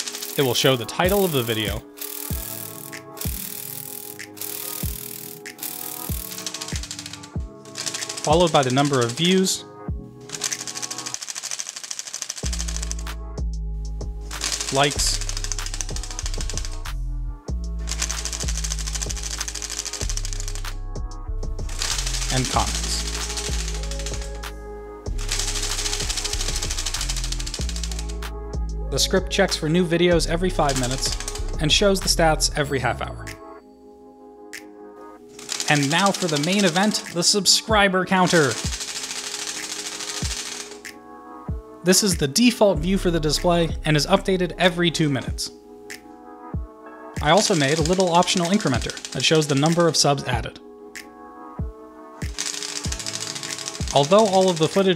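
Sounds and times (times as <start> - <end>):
background music: 0.0 - 54.9.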